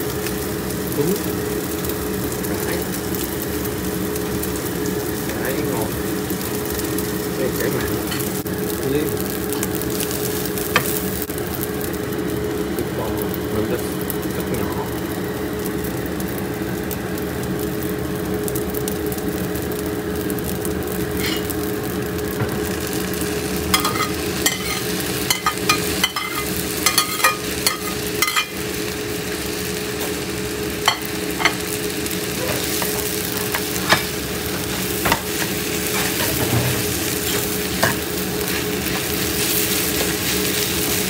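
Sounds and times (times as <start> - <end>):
rice sizzling in a skillet: 0.0 - 41.0.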